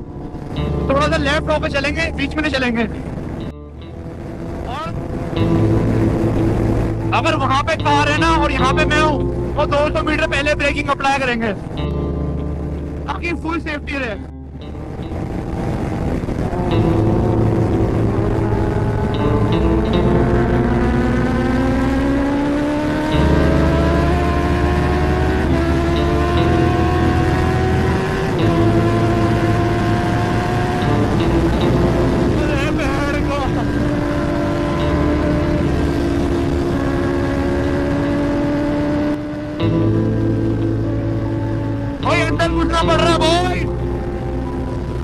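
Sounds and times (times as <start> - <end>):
background music: 0.0 - 45.0
motorcycle engine at high speed: 0.0 - 45.0.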